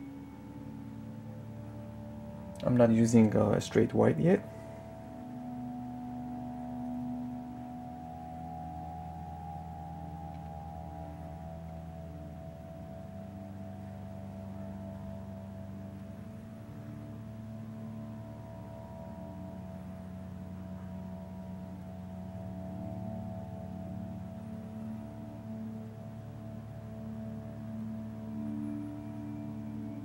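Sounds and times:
ambient music of long held tones: 0.0 - 30.0.

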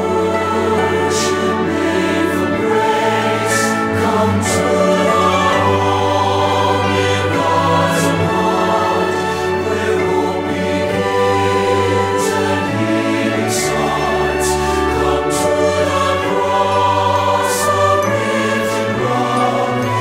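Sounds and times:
choir singing with accompaniment: 0.0 - 20.0.

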